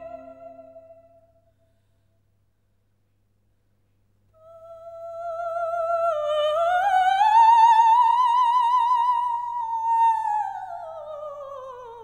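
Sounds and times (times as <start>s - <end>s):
woman singing operatic note: 0.0s - 1.2s.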